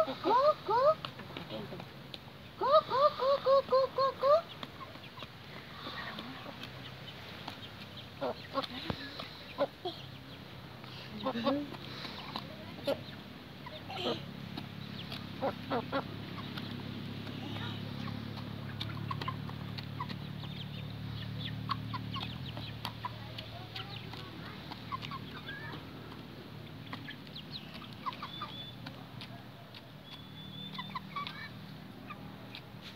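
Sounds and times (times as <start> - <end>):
hens clucking: 0.0 - 32.9.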